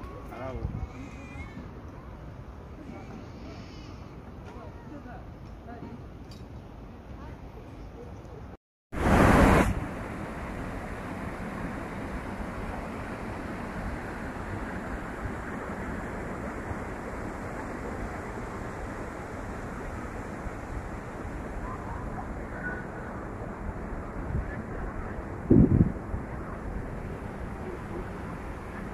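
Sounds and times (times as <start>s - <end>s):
wind rumble on microphone: 0.4s - 1.8s, 9.0s - 28.9s
river water rushing over weir: 9.0s - 25.4s.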